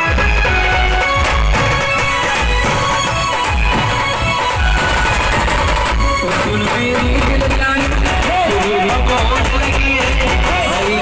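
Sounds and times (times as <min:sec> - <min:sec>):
drums beaten with sticks: 0:00.0 - 0:11.0
loud amplified music: 0:00.0 - 0:11.0.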